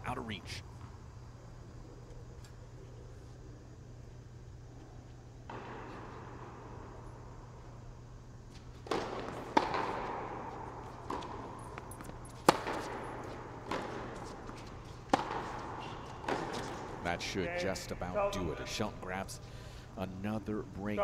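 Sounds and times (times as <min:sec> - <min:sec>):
steady low hum: 0:00.0 - 0:21.0
tennis ball bouncing: 0:05.5 - 0:07.6, 0:08.5 - 0:17.0
tennis racket strikes: 0:08.8 - 0:17.2.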